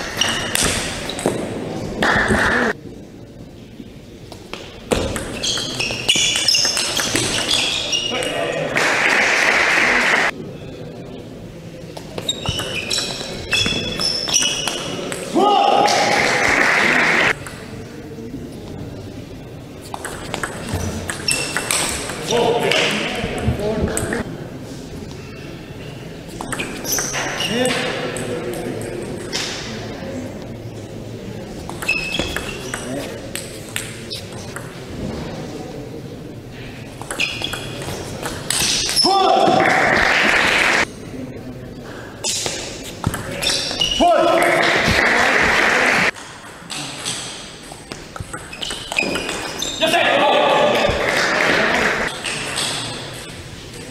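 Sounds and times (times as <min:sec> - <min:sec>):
shoes squeaking on floor: 0:00.0 - 0:01.3, 0:04.9 - 0:08.4, 0:12.1 - 0:15.1, 0:20.6 - 0:22.5, 0:26.4 - 0:27.9, 0:31.7 - 0:33.2, 0:37.1 - 0:39.1, 0:42.2 - 0:45.6, 0:46.7 - 0:50.1
crowd noise: 0:00.0 - 0:53.9.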